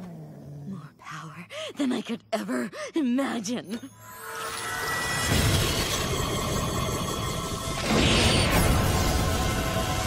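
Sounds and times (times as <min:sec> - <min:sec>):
film score: 0:00.1 - 0:10.0
magic transformation effect: 0:04.5 - 0:10.0.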